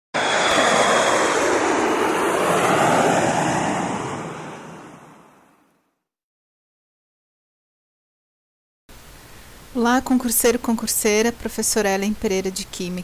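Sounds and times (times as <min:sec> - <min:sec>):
rushing noise: 0:00.2 - 0:05.5.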